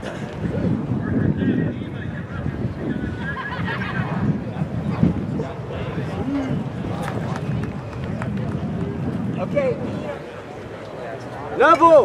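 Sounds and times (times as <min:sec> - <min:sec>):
spectators chattering: 0:00.0 - 0:12.0
running footsteps on rubber track: 0:04.5 - 0:11.0.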